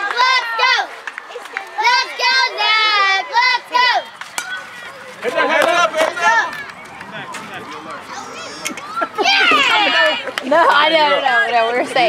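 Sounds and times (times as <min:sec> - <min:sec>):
children chanting a cheer: 0:00.0 - 0:05.2.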